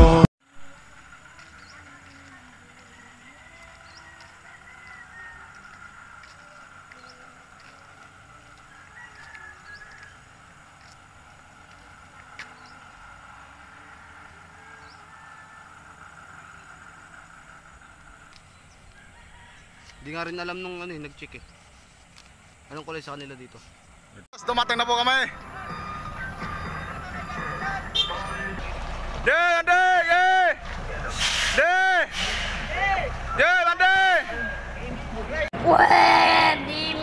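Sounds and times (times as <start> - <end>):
distant chicken and rooster calls: 2.6 - 21.1, 25.3 - 29.0.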